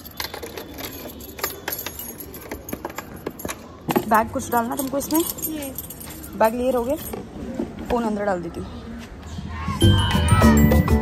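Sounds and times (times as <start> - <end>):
keys jangling on metal ring: 0.0 - 7.3.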